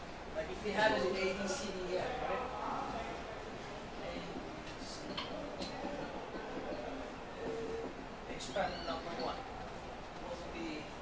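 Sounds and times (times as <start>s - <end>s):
faint indistinct voices: 0.4s - 11.0s
high squeak: 8.4s - 9.4s.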